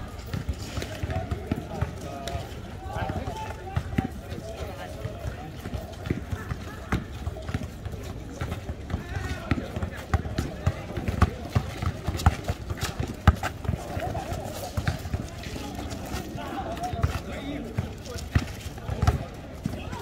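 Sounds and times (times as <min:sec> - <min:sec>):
players' voices: 0:00.0 - 0:20.0
basketball bouncing on asphalt: 0:00.2 - 0:02.0, 0:02.9 - 0:15.8, 0:16.7 - 0:20.0
sneaker footsteps: 0:05.0 - 0:20.0.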